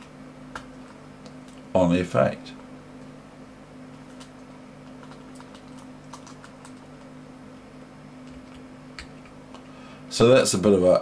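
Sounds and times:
steady low hum: 0:00.0 - 0:11.0
keyboard and mouse clicks: 0:04.0 - 0:07.1.

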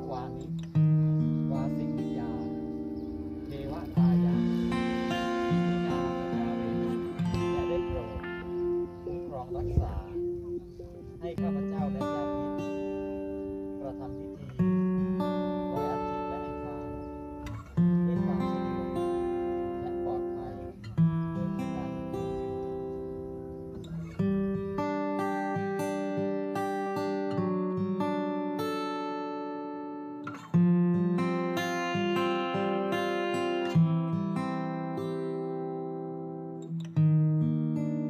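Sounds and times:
acoustic guitar chords: 0:00.0 - 0:38.0.

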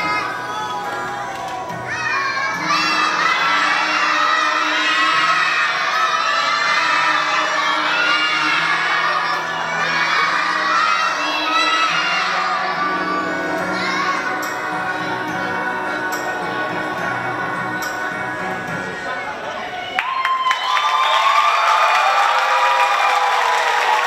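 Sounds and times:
music playing: 0:00.0 - 0:20.0
children shouting and cheering: 0:00.0 - 0:24.0.

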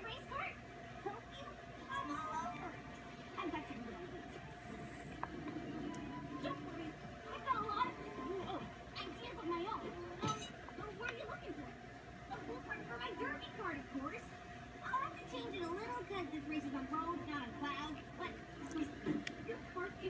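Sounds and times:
background music: 0:02.0 - 0:10.8.

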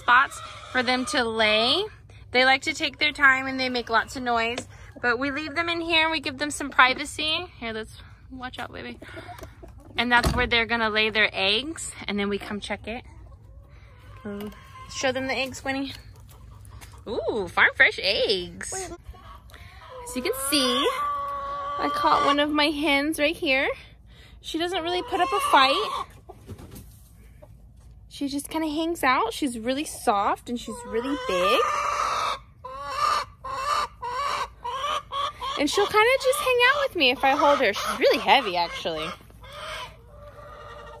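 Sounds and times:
hens clucking softly: 0:08.8 - 0:10.1, 0:12.4 - 0:17.1, 0:18.6 - 0:23.0, 0:24.8 - 0:28.0, 0:30.0 - 0:41.0.

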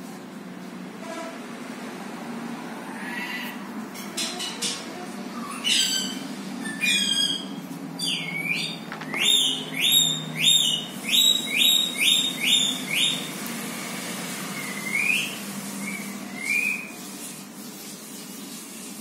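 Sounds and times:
bird calling: 0:05.4 - 0:13.4, 0:14.6 - 0:17.0.

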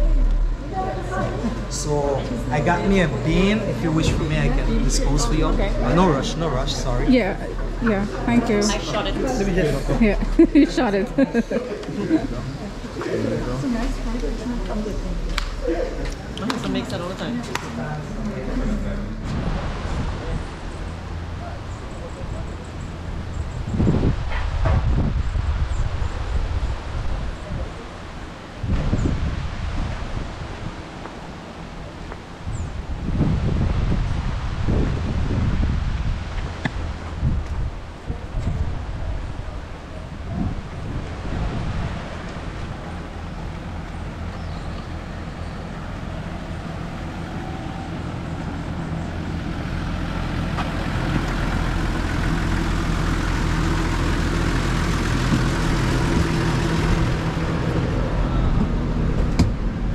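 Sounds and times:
minibus engine idling: 0:00.0 - 0:23.8, 0:41.9 - 0:59.9
wind buffeting microphone: 0:00.0 - 0:59.9.

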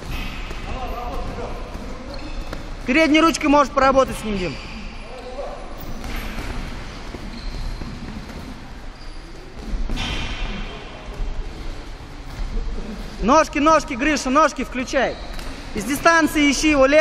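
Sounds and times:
footwork on ring canvas: 0:00.0 - 0:13.3.

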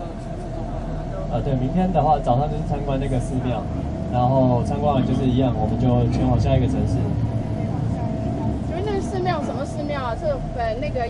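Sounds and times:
bus engine drone: 0:00.0 - 0:11.0
road noise: 0:00.0 - 0:11.0.

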